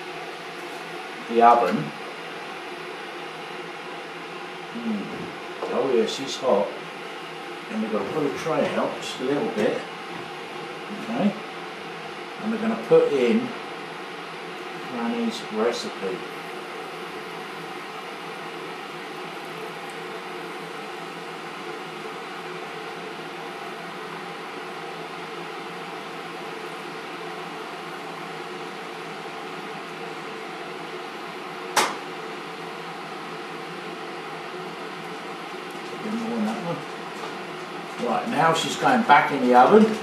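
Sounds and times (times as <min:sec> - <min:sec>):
appliance fan whirring hum: 0:00.0 - 0:40.0.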